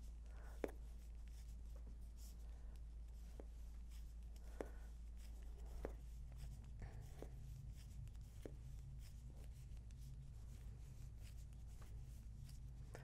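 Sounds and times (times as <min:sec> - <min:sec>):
low steady hum: 0:00.0 - 0:13.0
yarn rubbing: 0:00.8 - 0:13.0.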